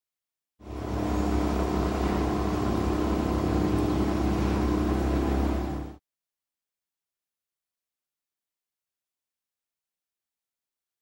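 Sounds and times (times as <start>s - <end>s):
faint hum: 0.6s - 6.0s
steady low rumble: 0.6s - 6.0s.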